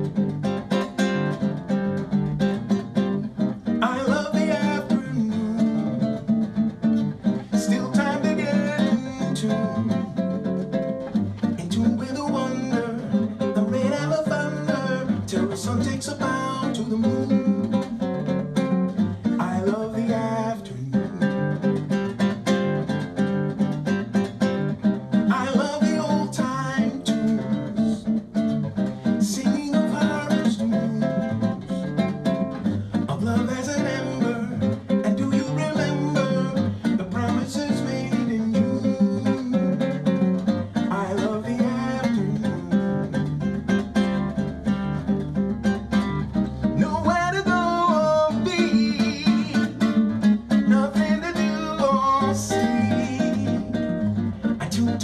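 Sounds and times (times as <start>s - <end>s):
classical guitar played solo: 0.0s - 55.0s.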